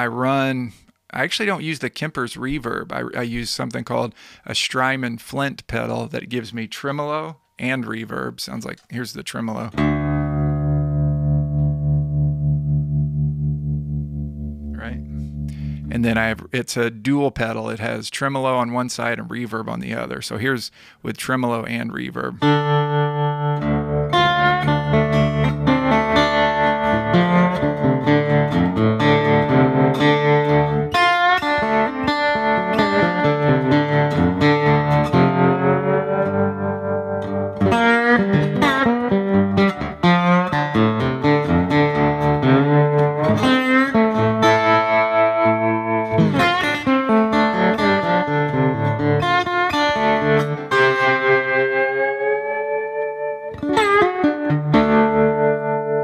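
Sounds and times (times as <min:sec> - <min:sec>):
slide lap steel guitar with tremolo: 0:09.7 - 0:16.0, 0:22.4 - 0:56.0
strummed guitar chord: 0:09.7 - 0:16.0, 0:22.4 - 0:56.0.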